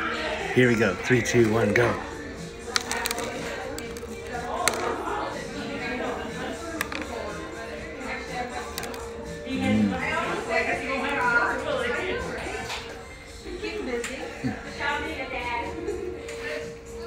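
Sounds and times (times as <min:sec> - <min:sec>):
background music: 0:00.0 - 0:17.0
faint chatter: 0:00.0 - 0:17.0.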